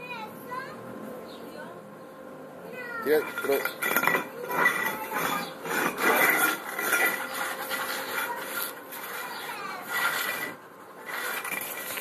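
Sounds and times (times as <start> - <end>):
tile scraping on concrete: 3.2 - 12.0.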